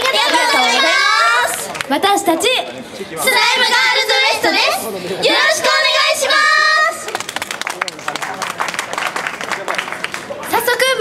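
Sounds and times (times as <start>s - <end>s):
girl group singing into microphones: 3.2s - 7.0s.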